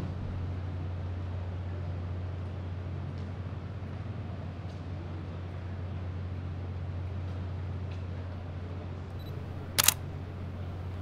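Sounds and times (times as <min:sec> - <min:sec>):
steady low background hum: 0:00.0 - 0:11.0
camera shutter snaps: 0:09.1 - 0:11.0.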